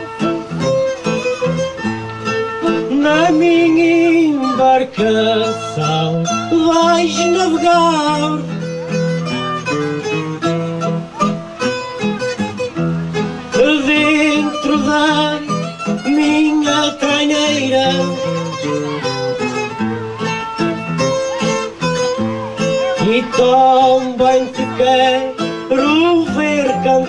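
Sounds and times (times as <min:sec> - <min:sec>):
acoustic guitar and plucked strings: 0:00.0 - 0:27.0.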